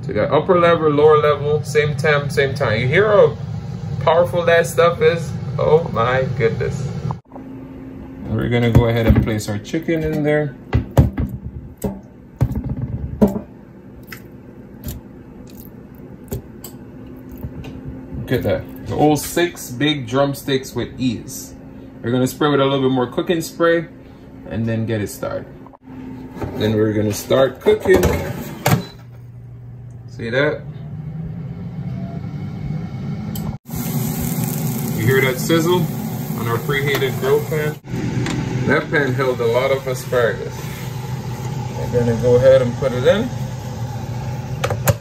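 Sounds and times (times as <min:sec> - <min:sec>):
air fryer hum: 0:00.0 - 0:45.0
asparagus sizzling on grill pan: 0:33.7 - 0:37.8.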